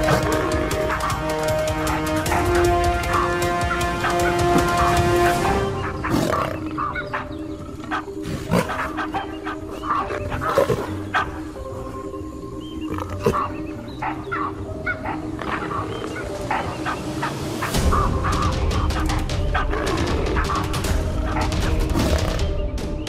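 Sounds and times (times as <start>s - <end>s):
wild animal calls: 0.0s - 22.5s
music with long held notes: 0.0s - 23.0s.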